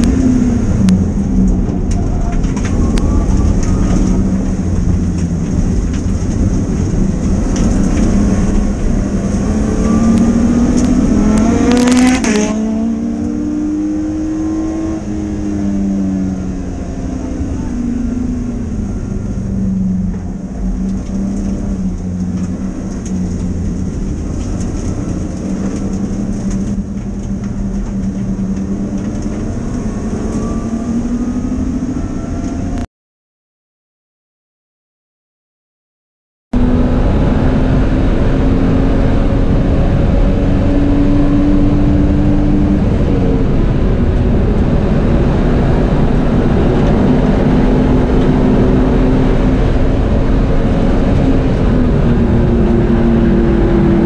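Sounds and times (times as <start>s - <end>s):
racing car engine revving: 0.0s - 19.4s, 20.0s - 32.8s, 36.6s - 54.0s.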